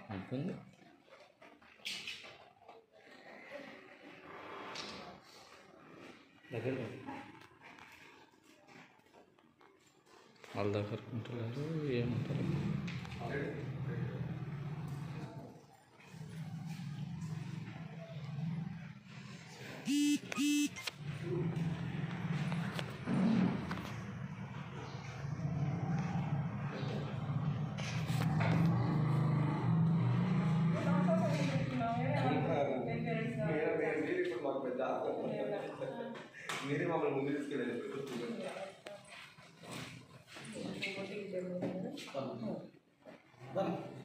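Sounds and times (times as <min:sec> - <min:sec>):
buzzy horn beeps: 0:19.8 - 0:20.9
people talking: 0:30.7 - 0:34.4.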